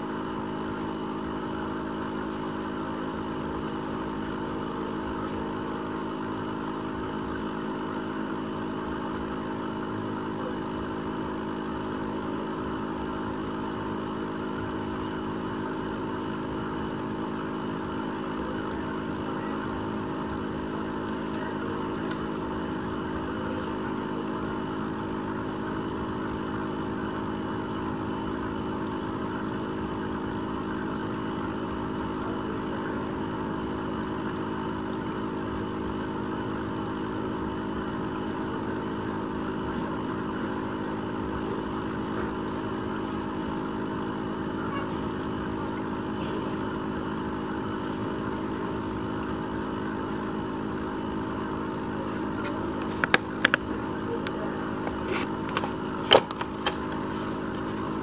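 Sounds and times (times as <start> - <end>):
aquarium pump humming: 0.0 - 58.0.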